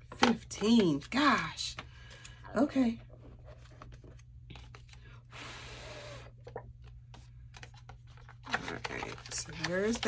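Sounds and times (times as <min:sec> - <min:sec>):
paper rustling in plastic pocket: 0:07.5 - 0:10.0.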